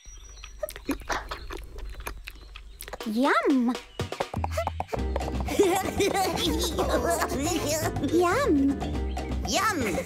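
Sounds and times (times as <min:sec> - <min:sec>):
cartoon munching: 0:00.3 - 0:07.1.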